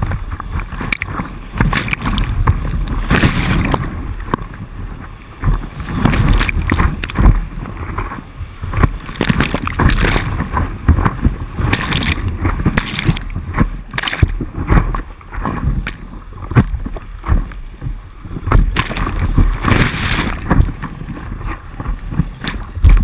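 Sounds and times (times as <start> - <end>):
water buffeting microphone: 0.0 - 23.0.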